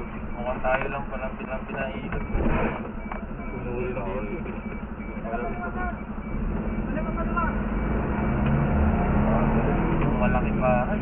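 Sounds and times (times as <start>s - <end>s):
fire truck engine: 0.0s - 11.0s.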